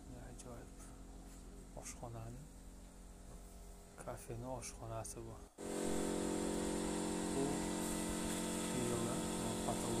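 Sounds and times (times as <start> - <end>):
machine humming: 5.6 - 10.0.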